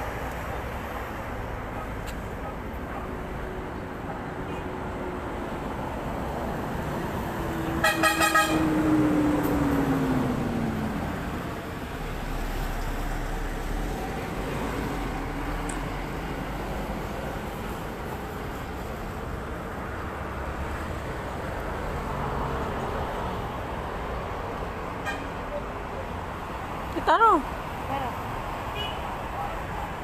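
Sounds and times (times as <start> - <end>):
passing vehicle engine: 0.0 - 30.0
roadside traffic noise: 0.0 - 30.0
vehicle horn toots: 7.8 - 8.7, 28.8 - 29.0.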